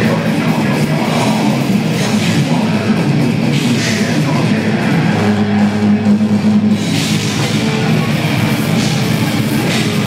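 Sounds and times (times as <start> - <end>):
distorted electric guitars and bass: 0.0 - 10.0.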